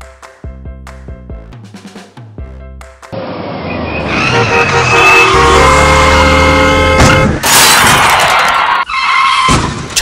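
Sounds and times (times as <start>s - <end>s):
music with drum hits: 0.0s - 3.1s
car and road noise rush: 3.1s - 10.0s
tyre squeal: 8.6s - 9.7s.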